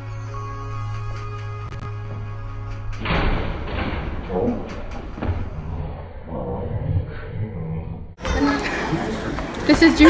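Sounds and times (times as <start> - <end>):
background music: 0.0 - 6.2
body hitting metal lockers: 2.9 - 5.6.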